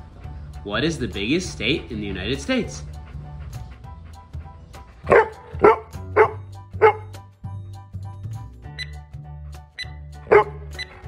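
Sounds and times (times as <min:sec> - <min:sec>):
background music: 0:00.0 - 0:11.0
dog barking: 0:05.0 - 0:07.2, 0:10.2 - 0:11.0.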